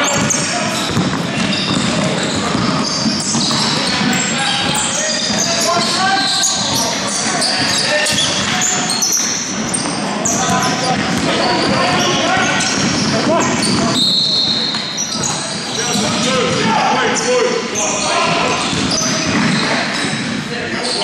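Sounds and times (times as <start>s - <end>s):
basketball bouncing: 0.0s - 14.0s, 18.3s - 20.4s
players calling out: 0.0s - 21.0s
sneakers squeaking on court: 0.0s - 21.0s.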